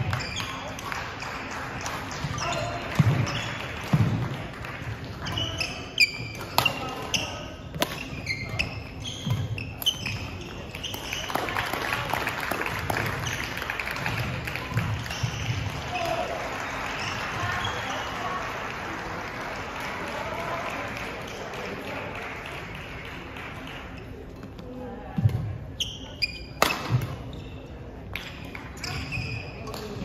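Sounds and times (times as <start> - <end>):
sneaker squeaks on wooden court: 0.0 - 0.8, 2.1 - 4.1, 5.2 - 11.5, 13.2 - 16.2, 25.2 - 30.0
racket hitting shuttlecock: 5.3 - 10.2, 26.6 - 27.2.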